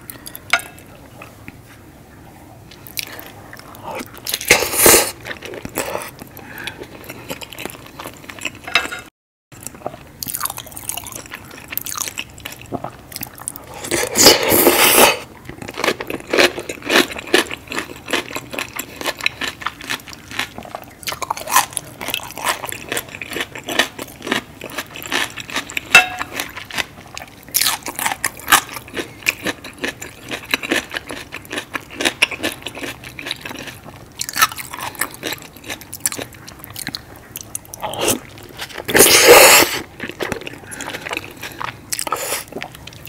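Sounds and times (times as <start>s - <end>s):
wet chewing of food: 2.7s - 43.0s.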